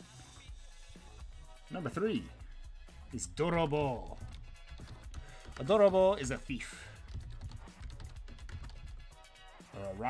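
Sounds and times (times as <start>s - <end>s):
low background music: 0.0s - 10.0s
computer keyboard typing: 4.0s - 9.0s.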